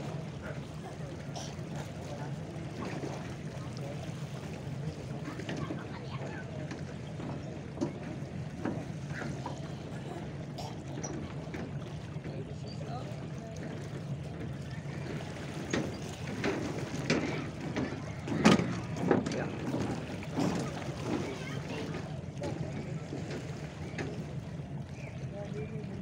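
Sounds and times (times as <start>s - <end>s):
nearby voices: 0.0s - 16.3s, 16.9s - 24.4s.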